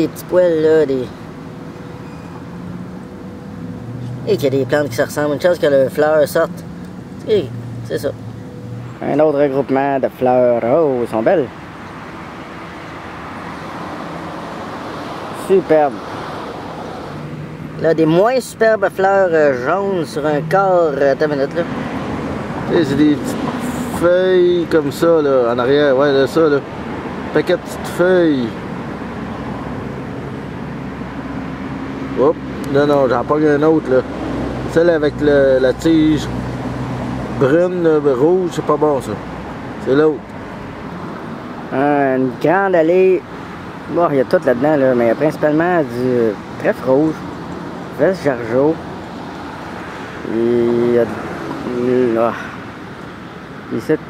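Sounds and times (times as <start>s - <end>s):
distant road traffic hum: 0.0s - 54.0s.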